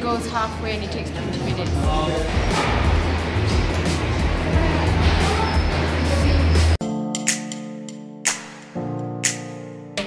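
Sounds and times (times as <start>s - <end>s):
background music: 0.0s - 10.0s
loud low rumbling: 1.2s - 6.8s.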